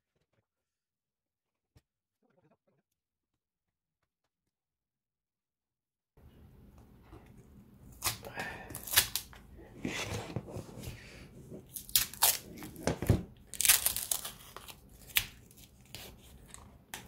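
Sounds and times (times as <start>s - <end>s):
plastic shrink wrap ripping and crinkling: 11.7s - 16.6s.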